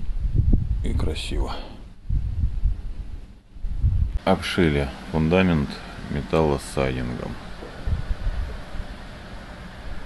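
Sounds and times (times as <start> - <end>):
wind buffeting microphone: 0.0 - 1.4, 2.0 - 4.2, 7.4 - 8.9.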